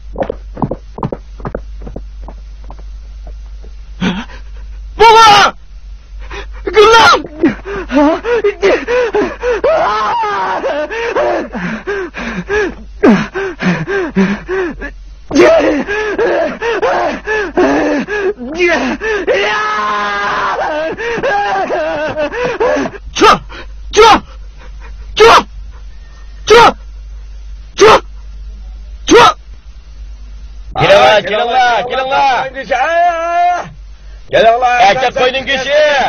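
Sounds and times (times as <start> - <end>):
footsteps on dry ground: 0.2 - 3.8
man sobbing and gasping: 4.0 - 4.9, 6.2 - 19.6, 20.3 - 25.9
man crying out: 5.0 - 5.6, 6.4 - 24.3, 25.2 - 25.5, 26.5 - 26.8, 29.1 - 29.4.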